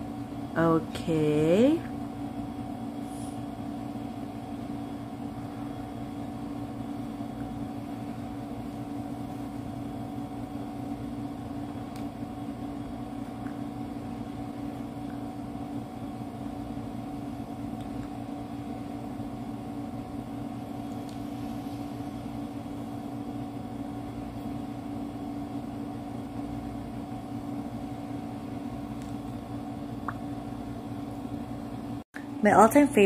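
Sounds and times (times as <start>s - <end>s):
steady mechanical hum: 0.0s - 33.0s.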